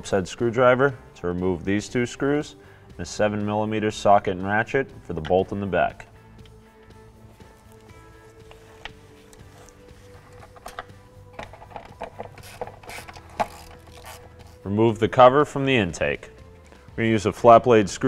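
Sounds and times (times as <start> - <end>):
quiet background music: 0.0 - 18.0.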